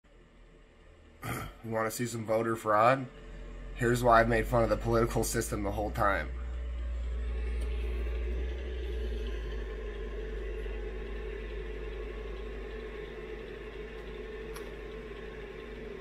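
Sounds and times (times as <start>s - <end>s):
machine humming and hissing: 0.1s - 16.0s.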